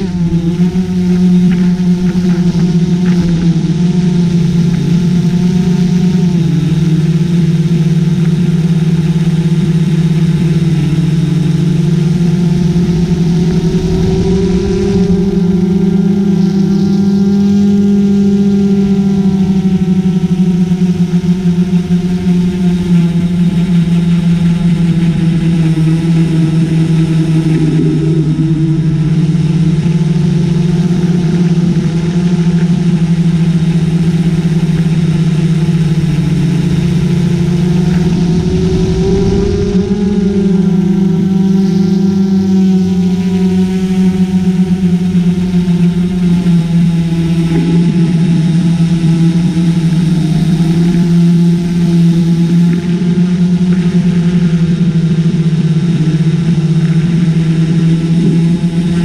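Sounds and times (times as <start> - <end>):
drone motors humming: 0.0 - 59.0.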